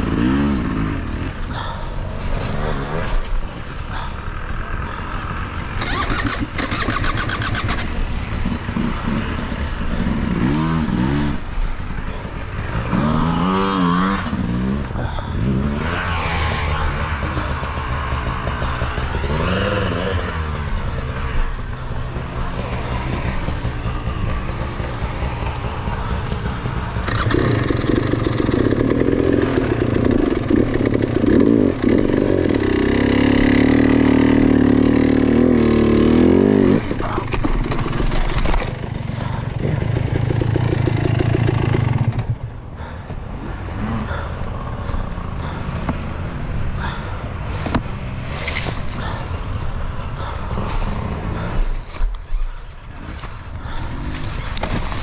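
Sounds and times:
dirt bike engines revving: 0.0 - 55.0
loud steady engine note: 0.0 - 55.0.

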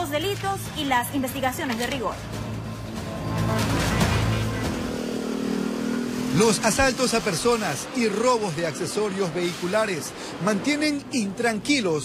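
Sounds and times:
background music: 0.0 - 9.0
car and motorcycle engines: 0.6 - 12.0.

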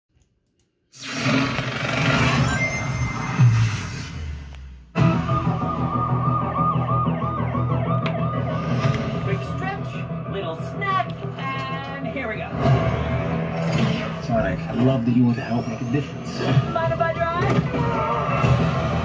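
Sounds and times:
siren wailing: 5.0 - 10.3
low music drone: 5.0 - 16.8.

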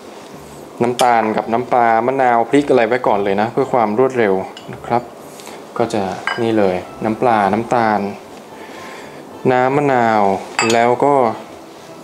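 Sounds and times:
man speaking: 0.8 - 5.2
metal bowls clinking: 4.5 - 5.1, 6.2 - 6.6, 10.6 - 11.0.

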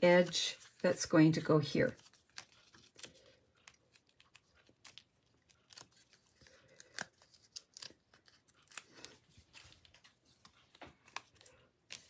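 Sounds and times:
paper rustling: 0.0 - 12.0.

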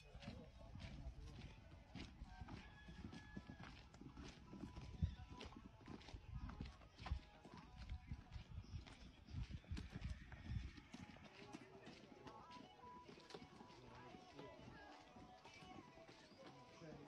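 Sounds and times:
footsteps on gravel: 0.1 - 17.0.

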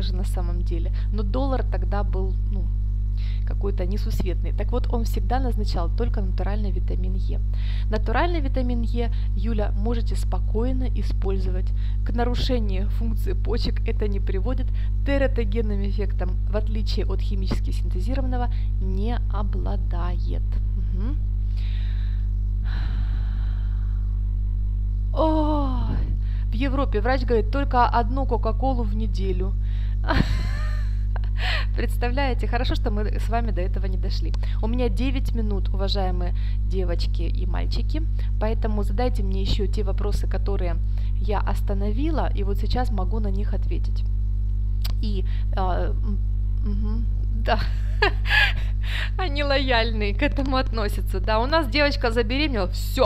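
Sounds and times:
electrical mains hum: 0.0 - 53.0
woman laughing breathily: 30.1 - 31.8, 47.6 - 49.2.

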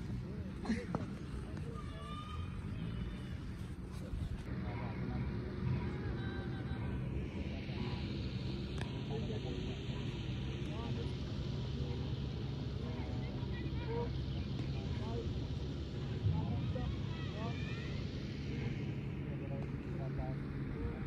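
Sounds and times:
faint voices: 0.0 - 21.0
low outdoor rumble: 0.0 - 21.0.

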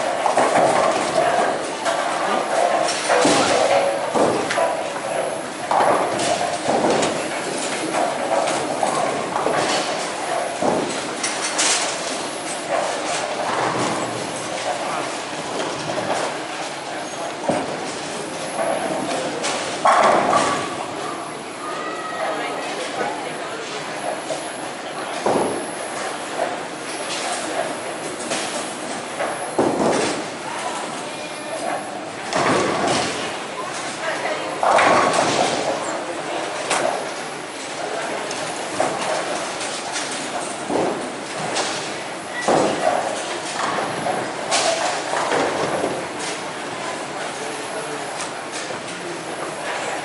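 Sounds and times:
bowling pins clattering: 0.0 - 21.3, 25.1 - 50.0
bowling balls rolling: 0.0 - 21.5, 22.2 - 50.0
people talking: 14.5 - 50.0.

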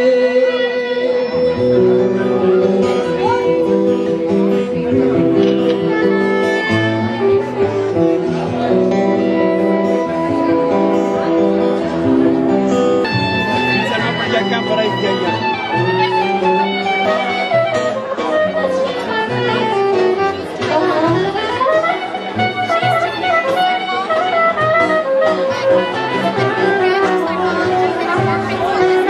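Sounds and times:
saxophone melody: 0.0 - 29.0
strummed acoustic guitar: 0.0 - 29.0.

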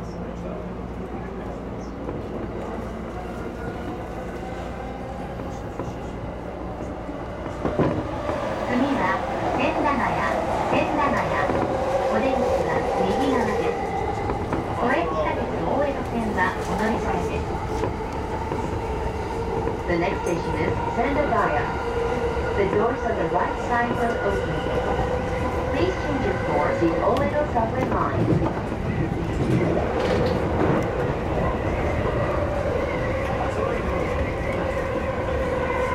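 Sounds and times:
train wheels rumbling on rail: 0.0 - 35.9.

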